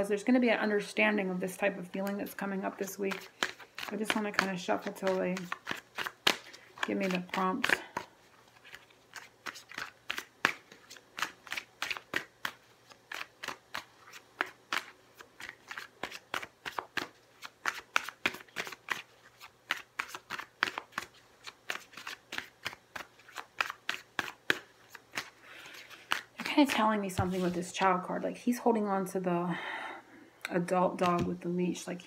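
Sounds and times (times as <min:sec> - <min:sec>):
cards being shuffled: 0:02.1 - 0:27.8.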